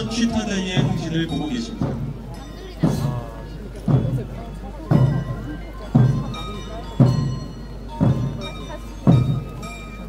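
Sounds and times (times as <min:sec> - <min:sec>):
big drum beats: 0:00.0 - 0:10.0
processional band marching music: 0:00.0 - 0:10.0.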